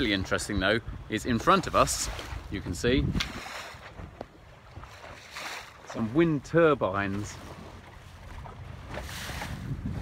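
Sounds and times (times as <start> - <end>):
water washing past hull: 0.0 - 10.0
wind rumbling on microphone: 0.0 - 10.0.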